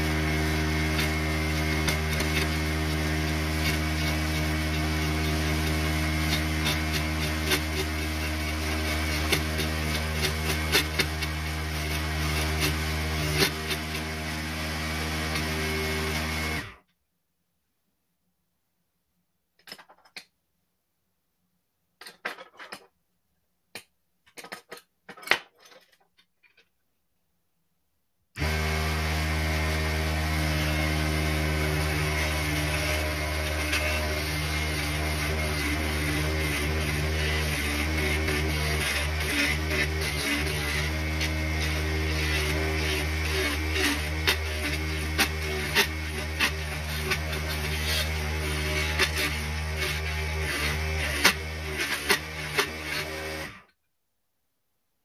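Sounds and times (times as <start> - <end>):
file scraping spinning wood: 0.0 - 16.8, 28.4 - 53.7.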